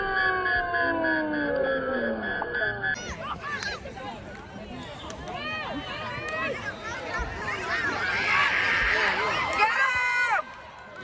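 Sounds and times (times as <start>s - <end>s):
crowd shouting: 5.3s - 11.0s.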